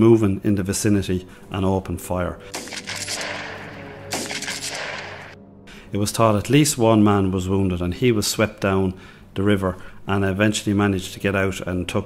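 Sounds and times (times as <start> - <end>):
gunshots: 2.5 - 5.4.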